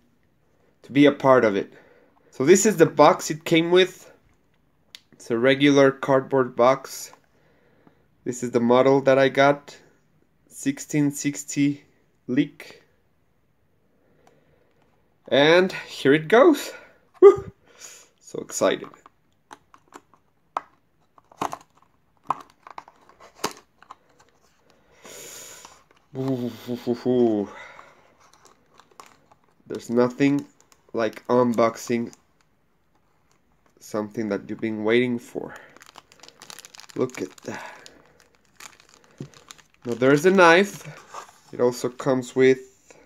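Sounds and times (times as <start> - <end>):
packaging scraping rustle: 28.0 - 29.6, 35.7 - 41.8
plastic bag crinkling: 28.1 - 32.2, 35.4 - 41.8
cardboard box crackling: 35.8 - 37.5, 38.1 - 41.6.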